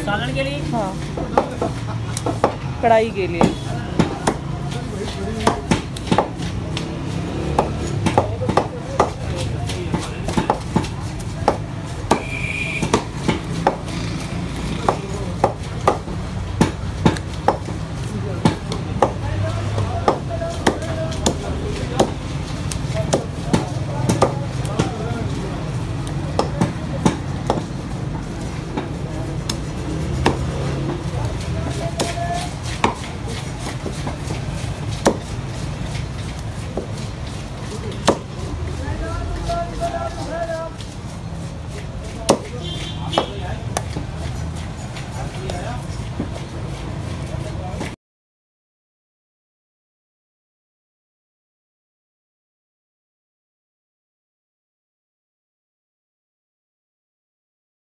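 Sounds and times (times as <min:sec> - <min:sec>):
cleaver chopping on wooden block: 0:01.0 - 0:02.7, 0:03.4 - 0:04.8, 0:05.4 - 0:25.0, 0:25.7 - 0:38.4, 0:42.1 - 0:46.3.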